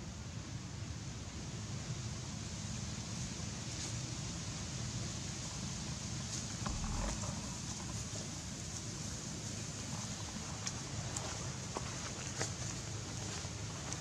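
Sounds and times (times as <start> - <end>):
low outdoor rumble: 5.4 - 14.0
rustles and clicks in grass: 5.4 - 14.0.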